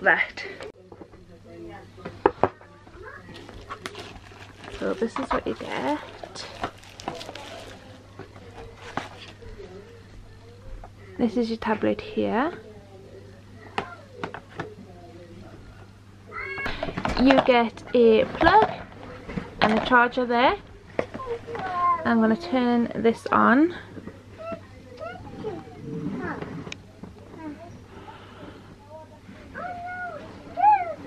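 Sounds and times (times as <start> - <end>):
faint voices: 0.0 - 31.0.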